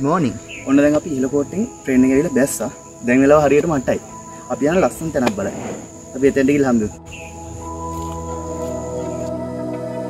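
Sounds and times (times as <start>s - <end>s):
man speaking: 0.0s - 7.0s
crickets chirring: 0.0s - 10.0s.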